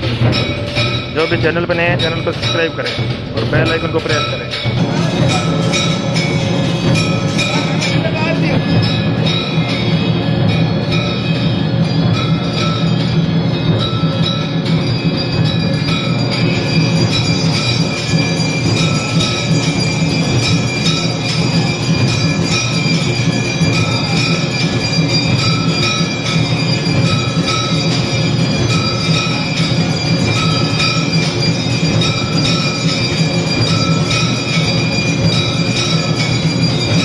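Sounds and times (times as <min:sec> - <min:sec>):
bells ringing: 0:00.0 - 0:37.0
drum and cymbal beating: 0:00.0 - 0:37.0
high ringing tones: 0:00.0 - 0:37.0.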